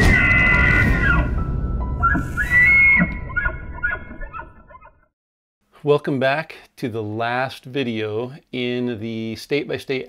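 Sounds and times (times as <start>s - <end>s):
elk bugling: 2.0s - 4.9s.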